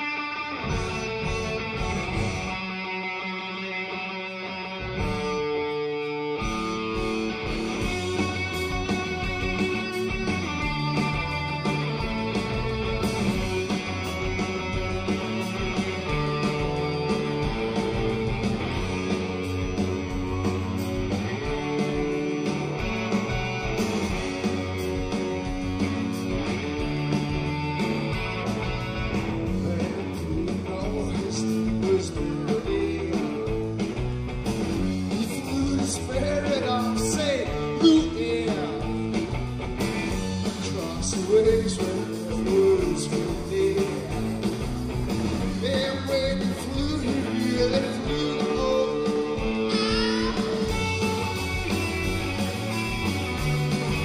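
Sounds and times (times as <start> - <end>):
drums: 0.0 - 54.0
electric guitars: 0.0 - 54.0.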